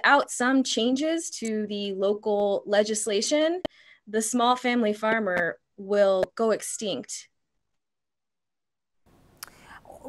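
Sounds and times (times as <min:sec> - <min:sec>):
faint microphone room hiss: 0:09.1 - 0:10.0
soft breath: 0:09.4 - 0:10.0.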